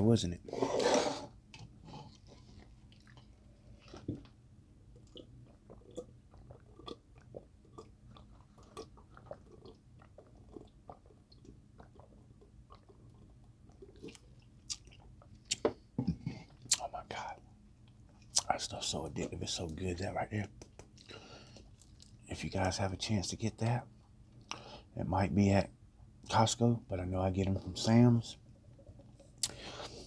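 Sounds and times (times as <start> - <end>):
soft chewing: 1.5 - 22.2
swallowing: 5.0 - 16.8.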